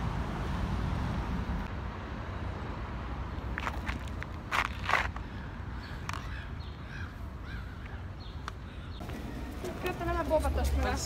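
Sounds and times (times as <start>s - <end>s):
bird harsh calls: 5.0s - 9.0s.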